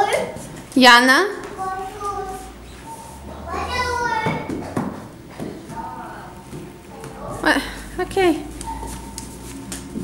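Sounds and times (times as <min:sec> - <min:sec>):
footsteps: 0:00.2 - 0:10.0.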